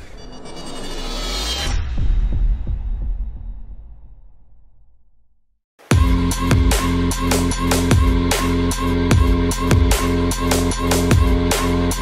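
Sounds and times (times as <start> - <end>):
deep bass hit: 1.6 - 5.0.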